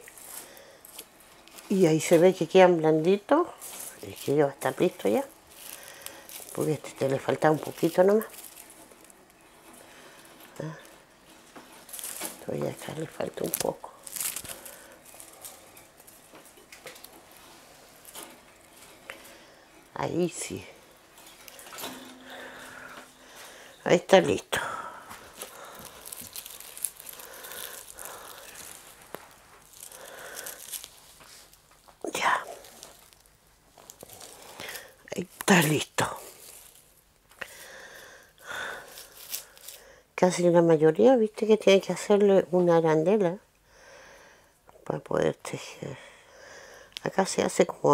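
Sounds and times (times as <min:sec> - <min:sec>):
light crackles: 0:00.0 - 0:40.1
soft rustling of rush strands: 0:00.0 - 0:40.6
rushes rustling: 0:24.9 - 0:37.0.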